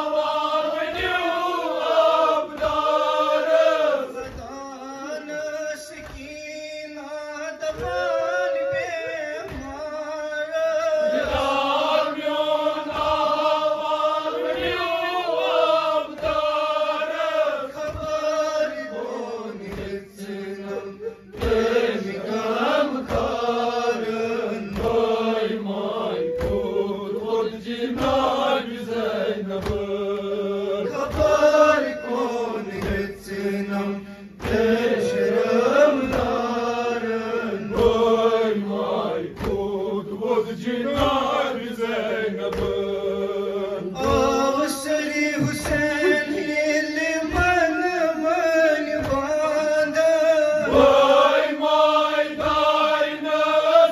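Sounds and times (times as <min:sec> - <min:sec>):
group of men chanting: 0:00.0 - 0:06.2, 0:07.5 - 0:53.9
man chanting into microphone: 0:00.0 - 0:53.9
rhythmic chest-beating thumps: 0:00.0 - 0:53.9.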